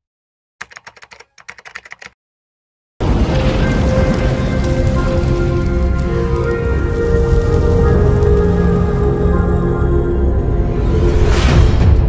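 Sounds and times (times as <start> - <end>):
keyboard key clicks: 0.6 - 2.2.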